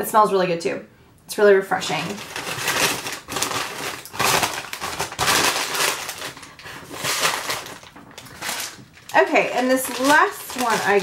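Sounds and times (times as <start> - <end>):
paper packaging rustling: 1.8 - 11.0.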